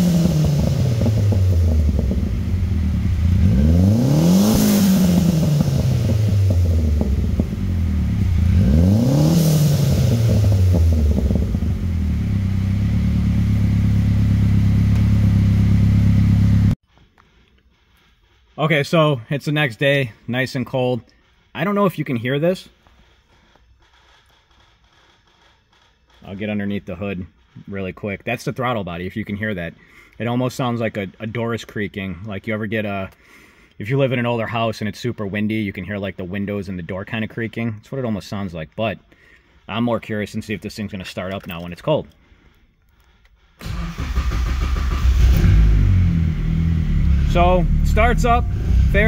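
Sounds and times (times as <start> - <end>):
car engine cranking: 0.0 - 19.3, 20.0 - 32.3, 39.1 - 49.0
faint irregular creaking: 22.7 - 27.7
car engine fast idle: 43.6 - 49.0.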